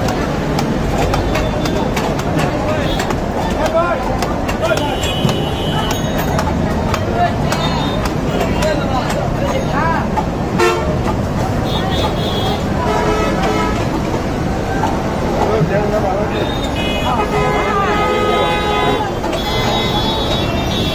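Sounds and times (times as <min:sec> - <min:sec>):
traffic noise: 0:00.0 - 0:20.9
vehicle horns tooting: 0:01.0 - 0:03.1, 0:04.6 - 0:06.4, 0:07.4 - 0:09.0, 0:10.5 - 0:14.1, 0:16.2 - 0:20.9.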